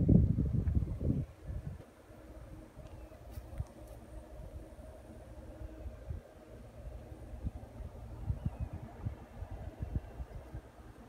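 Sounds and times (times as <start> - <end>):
faint steady hum: 0.0 - 11.0
wind buffeting microphone: 0.0 - 11.0.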